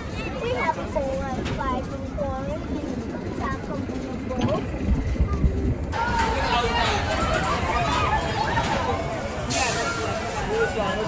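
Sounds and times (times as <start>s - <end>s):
amusement ride rumbling: 0.0s - 11.0s.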